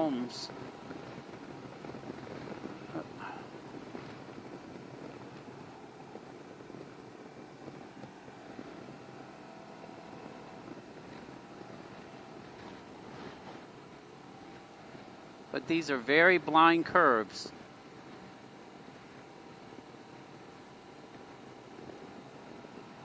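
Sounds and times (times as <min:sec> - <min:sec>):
motorcycle engine hum: 0:00.0 - 0:23.0
road and wind noise: 0:00.0 - 0:23.0.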